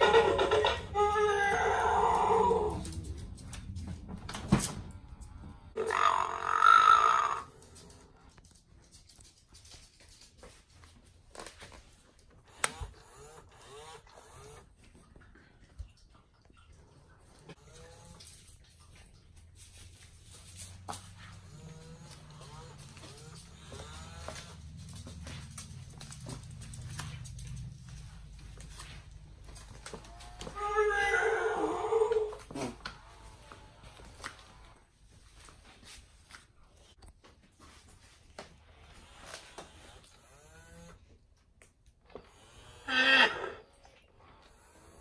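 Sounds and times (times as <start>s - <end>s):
toy dinosaur call: 0.0s - 2.8s, 5.8s - 7.8s, 42.6s - 43.7s.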